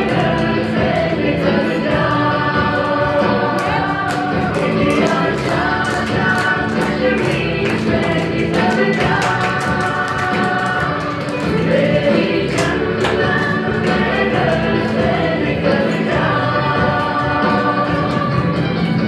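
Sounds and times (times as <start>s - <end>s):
song with group singing: 0.0s - 19.0s.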